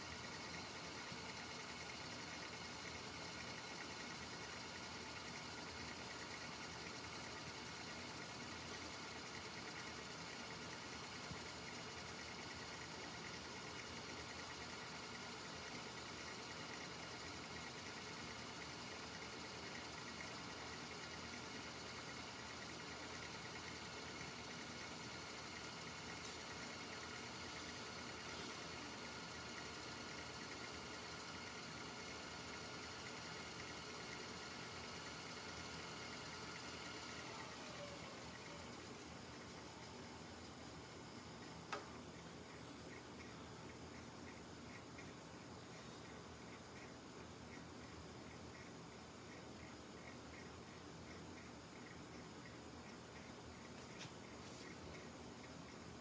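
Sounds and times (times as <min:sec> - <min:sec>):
tape deck motor whir: 0:00.0 - 0:56.0.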